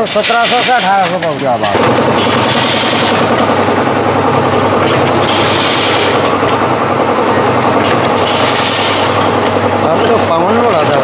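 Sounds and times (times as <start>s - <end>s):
packing machine rattling: 0.0s - 11.0s
sharp machine bursts: 1.7s - 11.0s.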